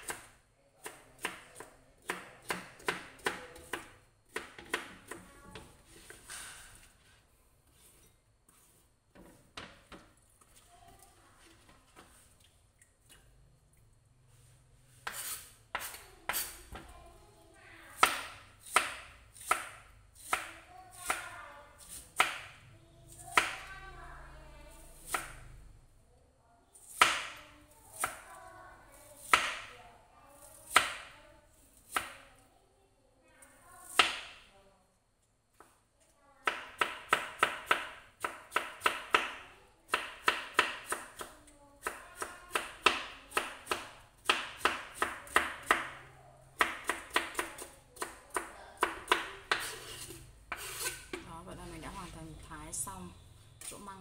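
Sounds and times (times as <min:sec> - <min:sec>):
knife chopping on cutting board: 0:00.0 - 0:06.2, 0:15.0 - 0:16.8, 0:18.0 - 0:21.2, 0:21.9 - 0:22.6, 0:46.6 - 0:51.3.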